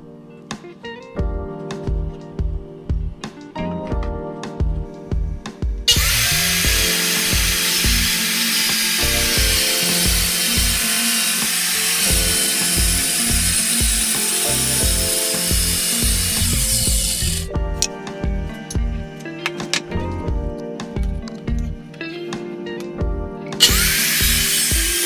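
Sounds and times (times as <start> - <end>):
background music with steady beat: 0.0 - 25.0
circular saw cutting plywood: 5.9 - 17.5, 23.6 - 25.0.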